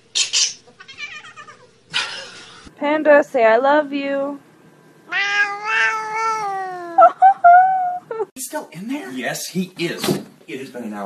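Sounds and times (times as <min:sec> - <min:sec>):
cat meowing: 0:00.8 - 0:01.6, 0:05.1 - 0:07.0.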